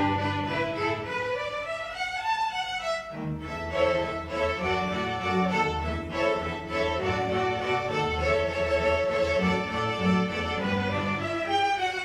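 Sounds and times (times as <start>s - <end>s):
string orchestra playing: 0.0s - 12.0s.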